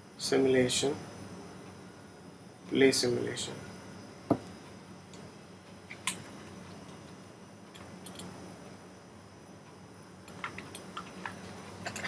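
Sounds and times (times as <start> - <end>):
faint background hiss: 0.0 - 12.0
computer mouse clicks: 7.7 - 8.3.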